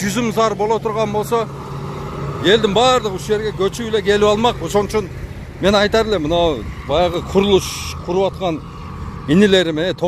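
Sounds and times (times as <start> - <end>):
man talking: 0.0 - 1.5, 2.4 - 10.0.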